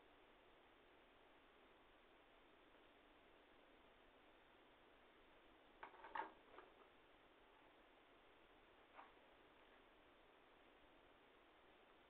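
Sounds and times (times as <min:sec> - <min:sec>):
faint hiss: 0:00.0 - 0:12.0.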